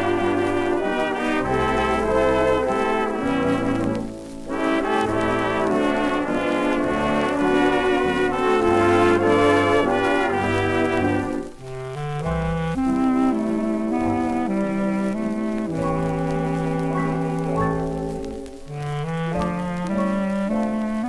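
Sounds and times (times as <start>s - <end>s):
dance orchestra playing a waltz: 0.0s - 21.0s.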